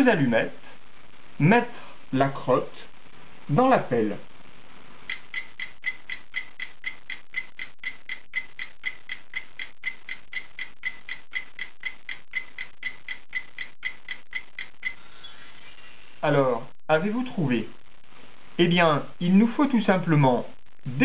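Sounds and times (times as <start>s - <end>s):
clock ticking: 5.1s - 15.0s.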